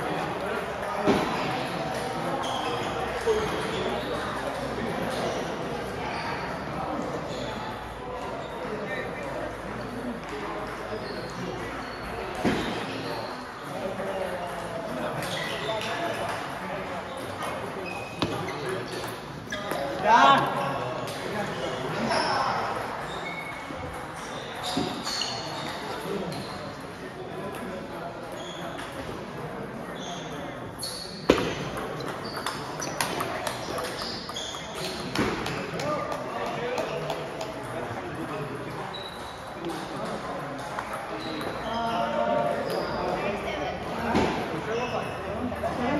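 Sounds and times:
voices in a large hall: 0.0 - 45.9
table tennis balls clicking: 31.7 - 38.8.

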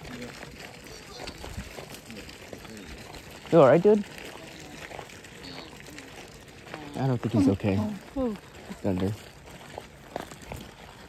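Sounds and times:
distant voices: 0.0 - 11.0
footsteps on gravel: 0.0 - 11.0
stroller wheels on gravel: 0.0 - 11.0.

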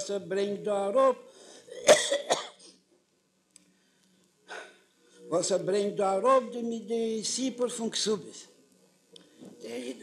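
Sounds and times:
man coughing: 1.7 - 2.8.

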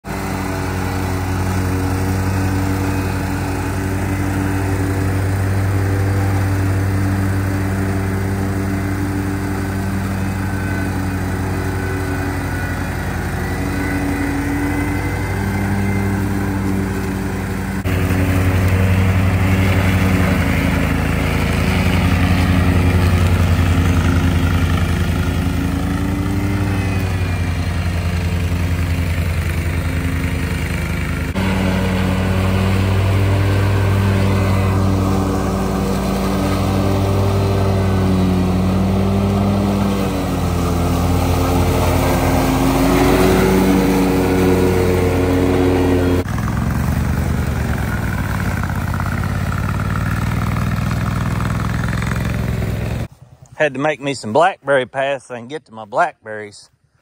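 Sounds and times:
mower engine cutting grass: 0.0 - 57.0.

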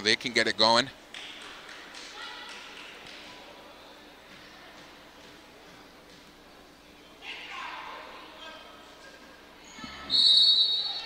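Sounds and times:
faint crowd chatter echoing: 0.0 - 11.0.

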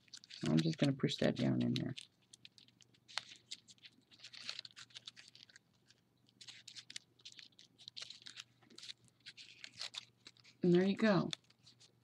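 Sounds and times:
folded paper crinkling: 0.0 - 12.0.

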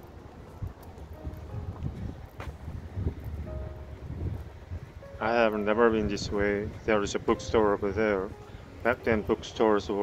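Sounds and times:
low traffic rumble: 0.0 - 10.0
wind buffeting microphone: 0.0 - 10.0.

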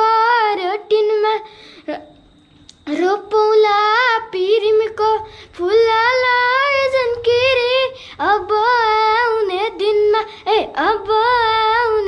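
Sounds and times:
boy singing unaccompanied: 0.0 - 1.6, 2.8 - 12.0.

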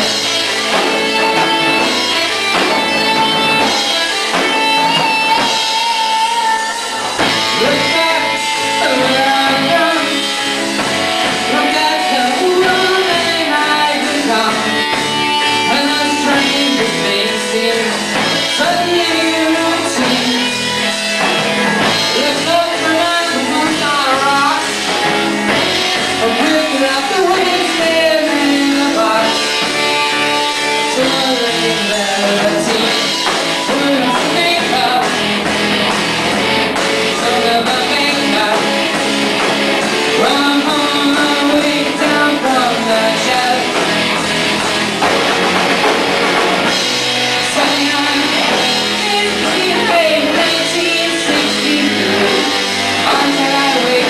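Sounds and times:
singer holding long notes: 0.0 - 45.5, 46.6 - 54.0
rock band playing: 0.0 - 54.0.

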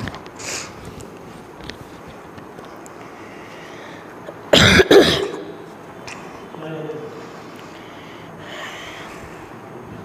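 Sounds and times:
boy coughing: 4.5 - 5.7.

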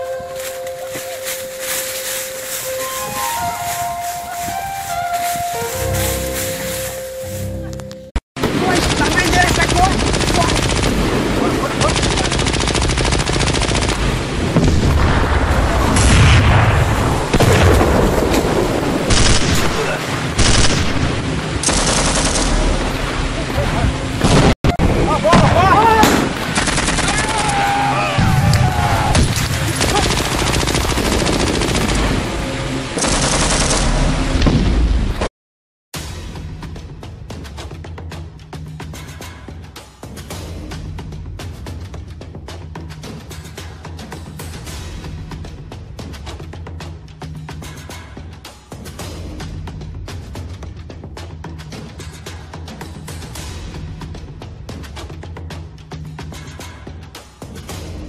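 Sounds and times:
rapid machine-gun fire: 8.4 - 14.8, 19.1 - 19.8, 20.4 - 23.0, 26.2 - 27.4, 29.4 - 32.3, 33.0 - 34.4.

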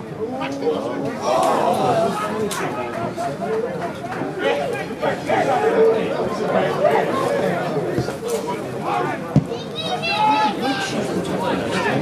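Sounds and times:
men chattering and calling out: 0.1 - 9.4.

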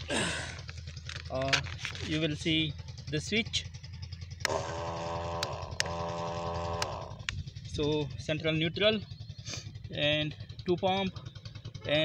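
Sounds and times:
electric pump motor whining: 4.4 - 7.5.

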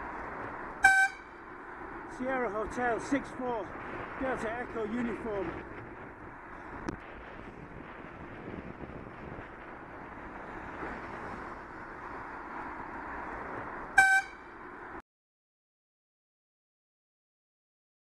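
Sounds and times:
wind and road noise: 0.0 - 15.0
short horn toot: 0.8 - 1.3, 14.0 - 14.4.

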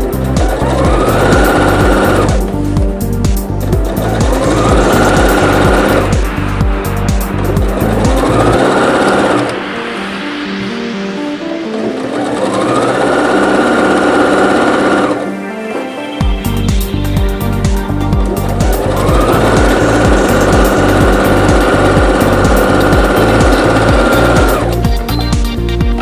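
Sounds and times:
sewing machine stitching: 0.0 - 2.6, 3.6 - 6.3, 7.4 - 9.6, 12.0 - 15.3, 18.4 - 25.0
background music with a beat: 0.0 - 26.0.

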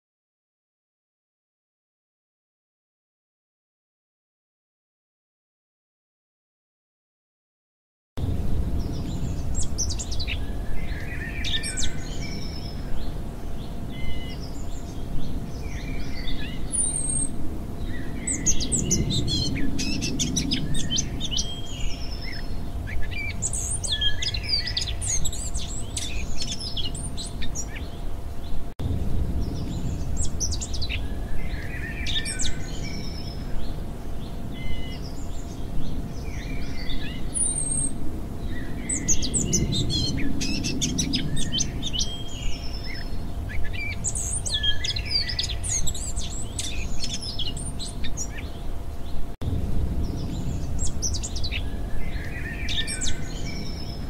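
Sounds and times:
faint steady hum: 8.2 - 54.0
low rumble: 8.2 - 54.0
songbirds chirping and trilling: 8.2 - 54.0.

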